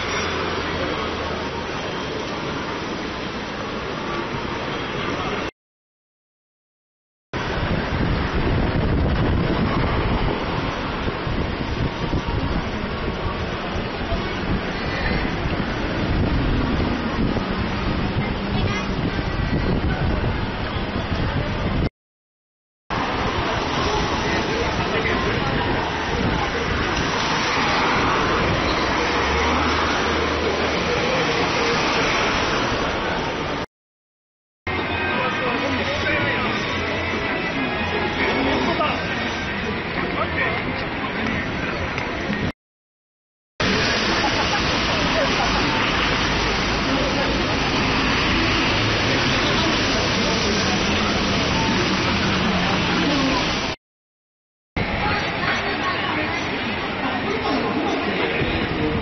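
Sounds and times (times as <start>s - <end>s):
cars passing: 0.0s - 5.5s, 7.4s - 21.8s, 22.9s - 33.7s, 43.6s - 53.8s
crowd voices: 0.0s - 5.5s, 7.4s - 21.9s, 22.9s - 33.7s, 34.7s - 42.5s, 43.6s - 53.8s, 54.8s - 59.0s
traffic driving past: 0.0s - 5.5s, 22.9s - 33.7s, 43.6s - 53.8s.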